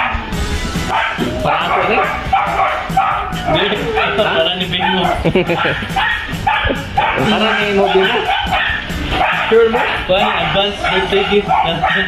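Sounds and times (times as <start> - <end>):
dog barking and yipping: 0.0 - 0.3, 0.9 - 12.0.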